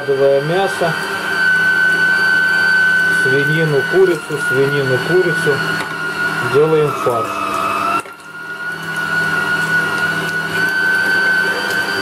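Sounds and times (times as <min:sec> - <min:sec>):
meat grinder motor whine: 0:00.0 - 0:12.0.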